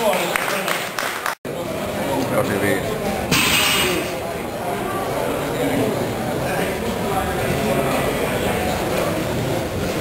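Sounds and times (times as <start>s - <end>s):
crowd murmuring in a hall: 1.5s - 10.0s.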